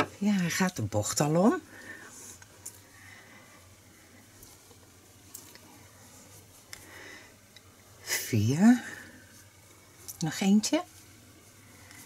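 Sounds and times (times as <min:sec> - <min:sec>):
yarn rustling with crochet hook: 0:00.1 - 0:12.0.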